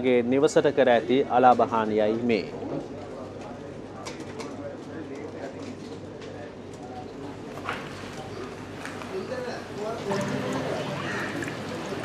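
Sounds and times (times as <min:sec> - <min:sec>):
bird cooing: 0:10.6 - 0:12.0.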